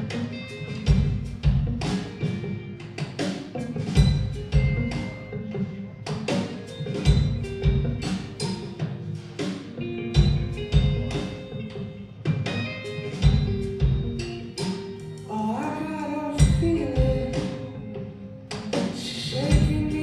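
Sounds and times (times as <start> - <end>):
drum kit and percussion: 0.0 - 20.0
guitar: 0.0 - 20.0.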